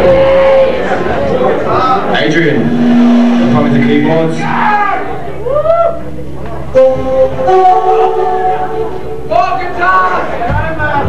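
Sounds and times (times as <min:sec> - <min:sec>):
black metal band through pa: 0:02.0 - 0:11.0
steady held note: 0:02.3 - 0:10.4.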